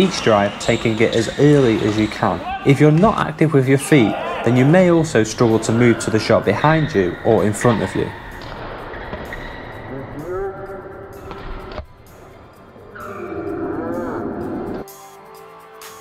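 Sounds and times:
court shoes squeaking: 0.0 - 10.4, 11.1 - 13.3
background music: 0.0 - 16.0
noisy hall background: 0.0 - 16.0.

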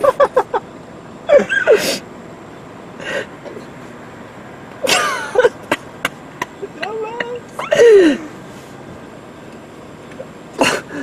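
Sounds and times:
stifled laughter: 0.0 - 0.6, 4.8 - 8.3.

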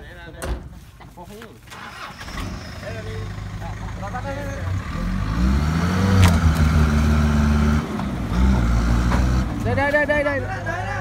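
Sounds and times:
truck engine revving: 1.7 - 11.0.

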